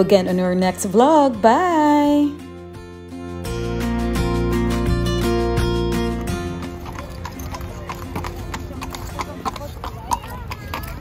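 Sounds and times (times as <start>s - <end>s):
people talking: 0.0s - 2.4s, 7.5s - 11.0s
hooves clip-clopping on stone: 5.9s - 11.0s.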